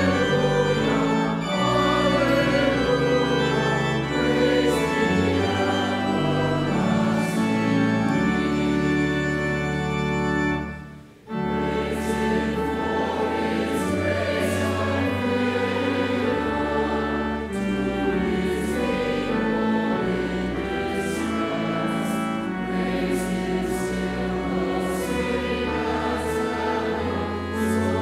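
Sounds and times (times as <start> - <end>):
congregation singing a hymn: 0.0 - 28.0
organ holding low notes: 0.0 - 28.0.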